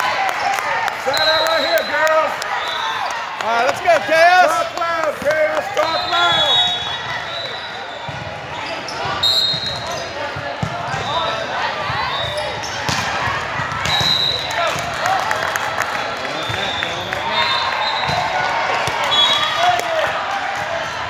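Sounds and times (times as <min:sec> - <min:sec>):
players and spectators calling: 0:00.0 - 0:21.0
sneaker squeaks: 0:05.8 - 0:13.0, 0:13.8 - 0:14.4.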